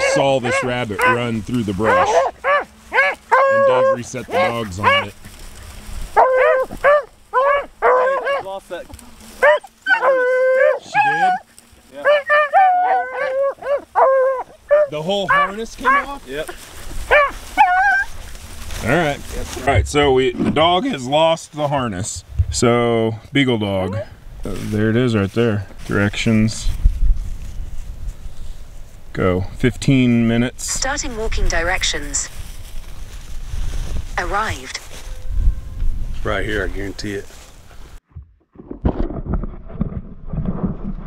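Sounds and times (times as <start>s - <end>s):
beagles baying: 0.0s - 8.6s, 9.4s - 18.6s
wind buffeting microphone: 19.1s - 20.9s, 22.0s - 23.3s, 26.2s - 29.8s, 30.4s - 37.0s.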